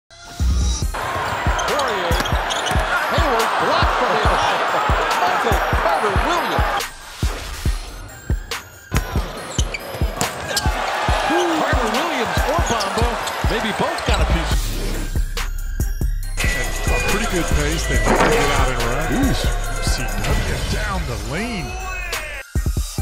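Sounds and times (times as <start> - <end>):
crowd noise: 0.9 - 7.0, 8.9 - 14.6, 16.4 - 22.4
sneakers squeaking: 1.0 - 6.8, 8.1 - 14.5, 16.9 - 19.6
basketball bouncing on hardwood: 18.1 - 18.7.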